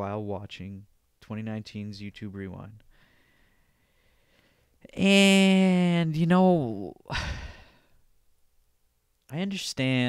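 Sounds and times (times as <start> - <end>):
man sighing: 7.0 - 8.0.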